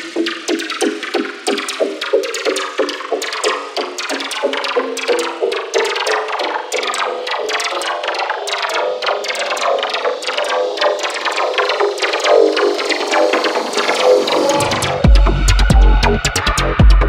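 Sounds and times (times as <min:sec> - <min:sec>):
electro music mix: 0:00.0 - 0:17.0
synth riff: 0:02.1 - 0:17.0.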